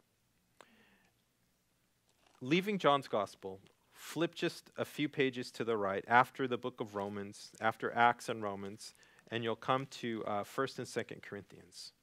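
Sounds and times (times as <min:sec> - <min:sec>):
faint breath: 0:00.6 - 0:01.2, 0:08.9 - 0:09.3.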